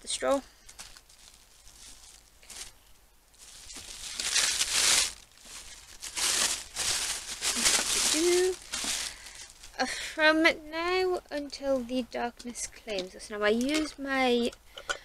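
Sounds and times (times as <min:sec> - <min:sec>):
packaging crumpled and torn: 0:00.7 - 0:09.8.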